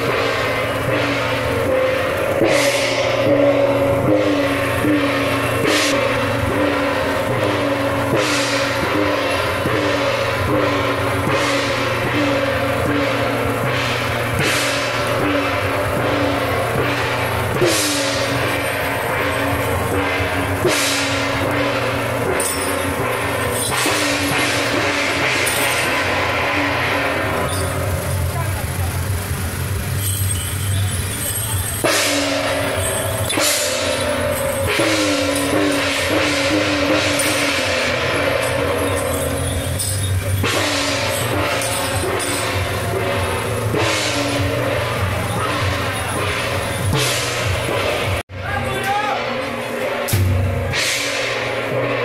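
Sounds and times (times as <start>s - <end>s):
gong and cymbal crashes: 0.0s - 48.2s, 49.0s - 52.0s.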